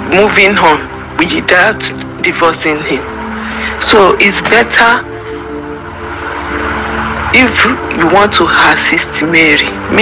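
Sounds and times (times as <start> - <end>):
steady droning hum: 0.0 - 10.0.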